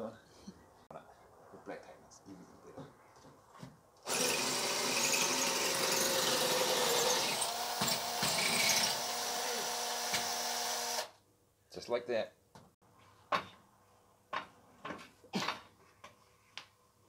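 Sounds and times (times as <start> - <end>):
power drill drilling into brick: 4.1 - 11.2.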